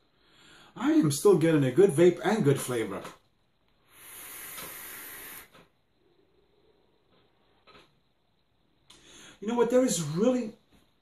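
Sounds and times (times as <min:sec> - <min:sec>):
faint puff of breath: 0:03.8 - 0:05.8
vape draw hissing: 0:03.8 - 0:05.8.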